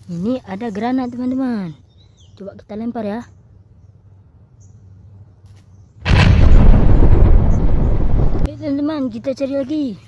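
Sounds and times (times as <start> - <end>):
deep explosion: 6.1 - 8.5.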